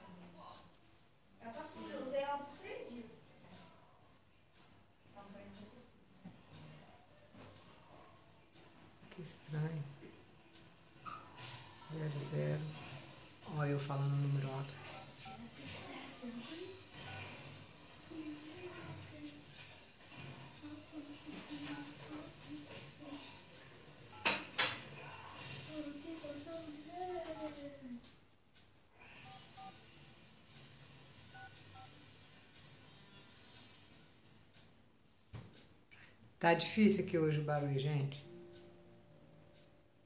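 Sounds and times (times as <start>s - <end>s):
phone keypad beeps: 29.3s - 29.7s, 31.4s - 31.9s.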